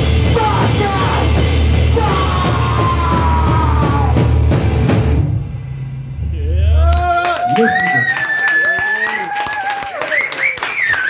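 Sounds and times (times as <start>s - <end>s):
drum and cymbal hits: 0.0s - 6.8s
rock band playing: 0.0s - 6.9s.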